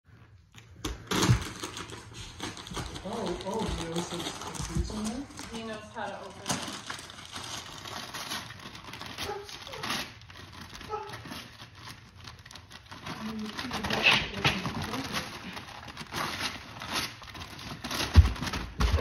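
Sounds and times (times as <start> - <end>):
wrapping paper crinkling and ripping: 0.5 - 19.0.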